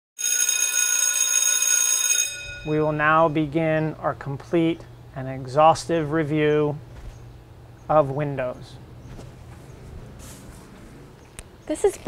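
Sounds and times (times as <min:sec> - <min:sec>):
bell ringing: 0:00.2 - 0:03.4.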